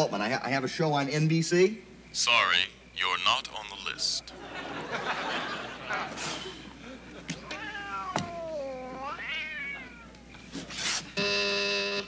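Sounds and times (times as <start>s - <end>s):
laughter: 4.3s - 7.4s
long meow-like cry: 7.5s - 10.2s
intercom electric buzz: 11.2s - 12.0s.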